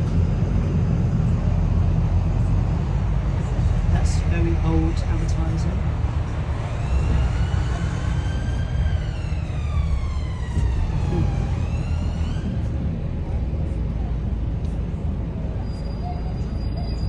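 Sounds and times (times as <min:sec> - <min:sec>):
bus engine rumble: 0:00.0 - 0:17.0.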